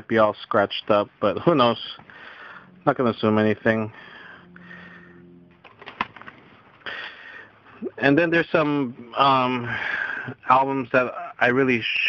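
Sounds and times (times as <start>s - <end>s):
low steady tone: 1.1s - 5.7s
plastic cases clicking: 5.6s - 6.4s.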